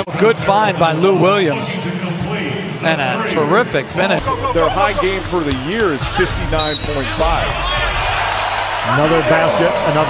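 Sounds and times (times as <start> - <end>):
crowd noise: 0.0 - 10.0
high-pitched shoe squeak: 6.4 - 7.1.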